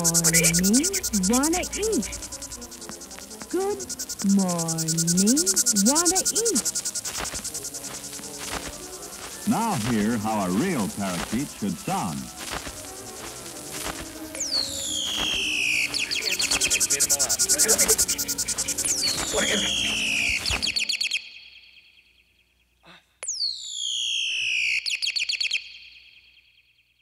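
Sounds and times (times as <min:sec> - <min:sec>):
murky background sound: 0:00.0 - 0:20.8
whistled call with rattling trill: 0:00.0 - 0:21.6, 0:23.3 - 0:26.3.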